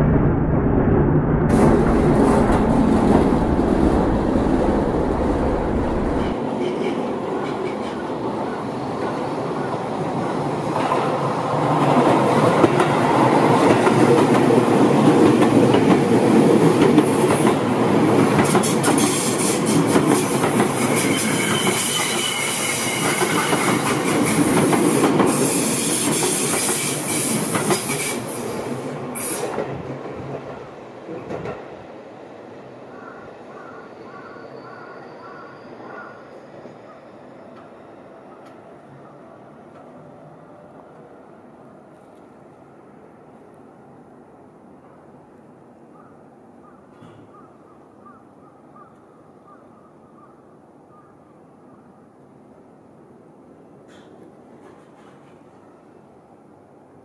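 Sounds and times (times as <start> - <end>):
trains clattering on rails: 1.5 - 32.1, 32.7 - 41.2, 53.7 - 56.6.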